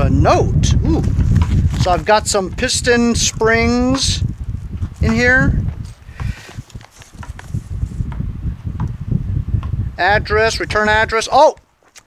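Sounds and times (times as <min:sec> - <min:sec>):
paper and envelope rustling: 0:01.0 - 0:03.7, 0:05.7 - 0:08.0.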